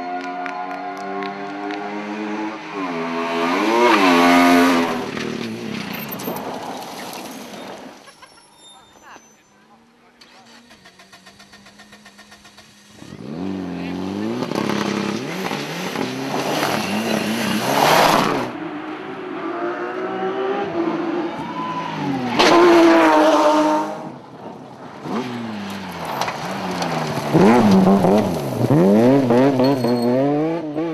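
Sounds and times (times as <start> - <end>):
rally car engines revving: 0.0 - 8.5, 10.2 - 30.9.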